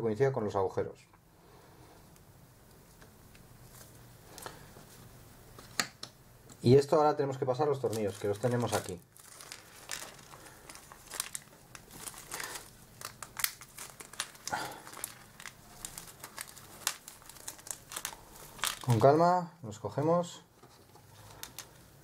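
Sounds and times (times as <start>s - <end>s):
plastic bag crinkling: 7.6s - 19.3s, 21.1s - 22.0s.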